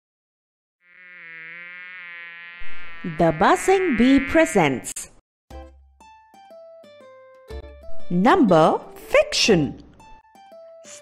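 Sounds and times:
bee buzzing: 0.8s - 5.1s.

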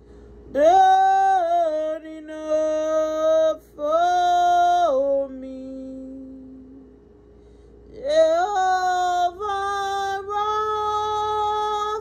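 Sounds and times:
woman singing a slow worship song: 0.5s - 7.1s, 7.8s - 12.0s.

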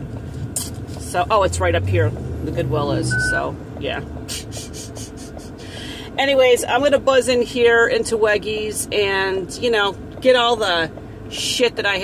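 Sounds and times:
car driving rumble from inside: 0.0s - 12.0s.

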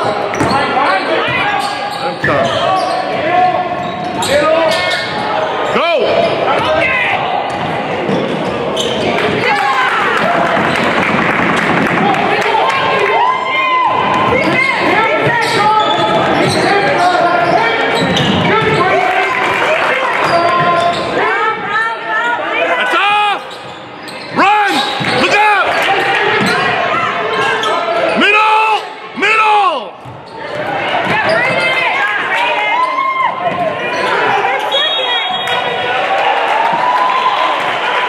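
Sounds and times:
crowd talking and calling out: 0.0s - 38.0s.

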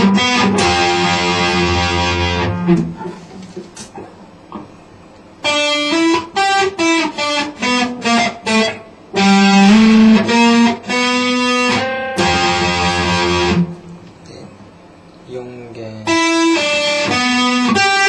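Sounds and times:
electric guitar notes: 0.0s - 4.8s, 5.4s - 14.0s, 16.0s - 18.0s.

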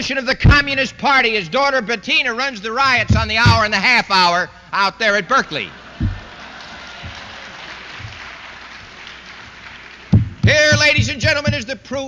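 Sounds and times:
audience applauding: 5.5s - 11.5s.

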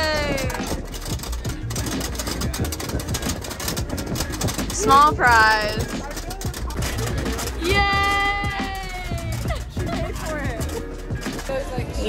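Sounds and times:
faint background chatter: 0.0s - 12.0s
woman cheering: 7.6s - 9.8s.

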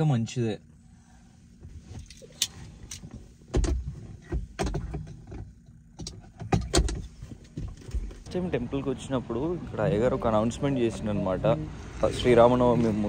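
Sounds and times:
clicks and knocks in car cabin: 1.6s - 8.3s.

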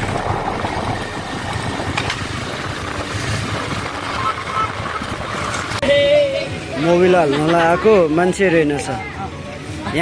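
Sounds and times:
road noise: 0.0s - 10.0s.

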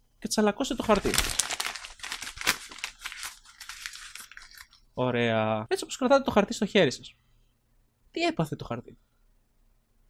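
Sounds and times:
paper being crumpled: 0.7s - 4.8s.

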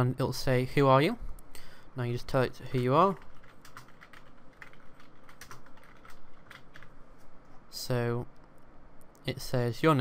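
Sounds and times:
computer keyboard typing: 3.0s - 7.0s.

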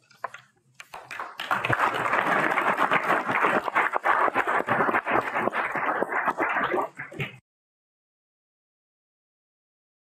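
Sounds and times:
crowd applauding: 0.9s - 6.9s.

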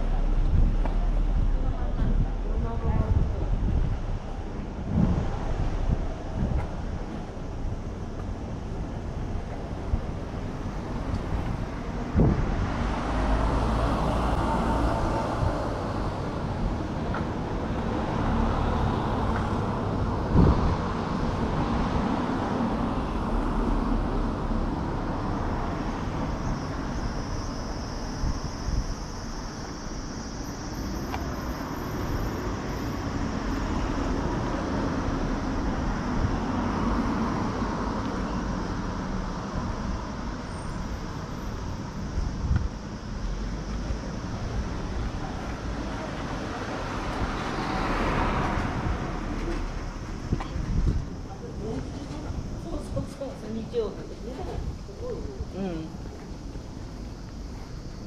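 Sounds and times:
road traffic noise: 0.0s - 58.0s.

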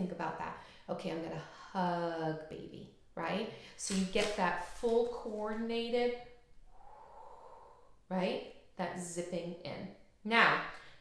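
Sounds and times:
woman speaking: 0.0s - 6.4s, 8.1s - 10.8s
soft breath: 6.6s - 8.1s.

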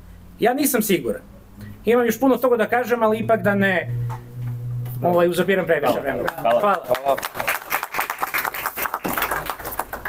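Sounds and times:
people clapping: 5.5s - 10.0s.

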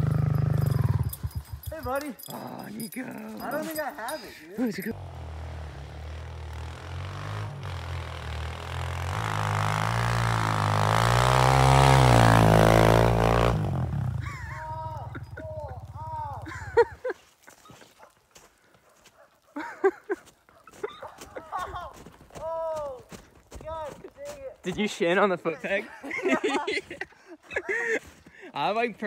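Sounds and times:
pit bike engine running: 0.0s - 2.3s, 5.0s - 17.0s.

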